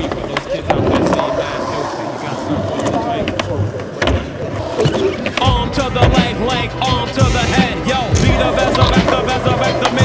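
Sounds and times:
skateboard clicks and knocks: 0.0s - 7.1s, 7.7s - 10.0s
skateboard wheels rolling on concrete: 0.0s - 10.0s.

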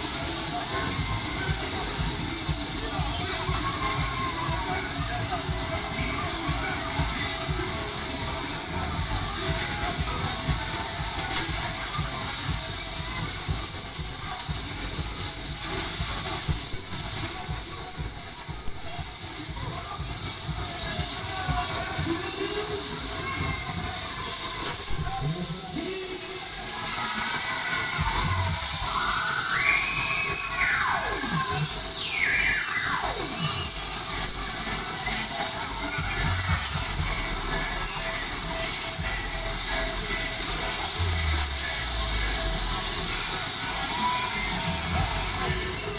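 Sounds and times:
fairground noise: 0.0s - 45.9s
funfair ride in motion: 0.0s - 45.9s
steady high-pitched squeal: 0.0s - 45.9s.

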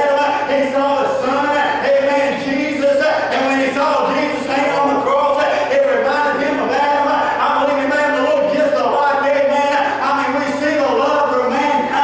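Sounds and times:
man preaching into a microphone: 0.0s - 12.0s.

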